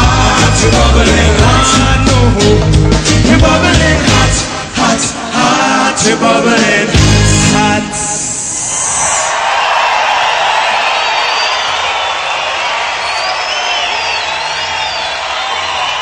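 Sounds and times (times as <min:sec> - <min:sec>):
crowd cheering and applauding: 0:00.0 - 0:04.3, 0:08.5 - 0:16.0.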